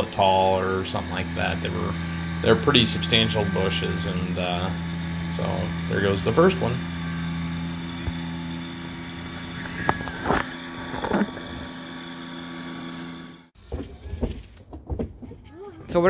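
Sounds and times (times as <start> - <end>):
tractor diesel engine running: 0.0 - 13.5.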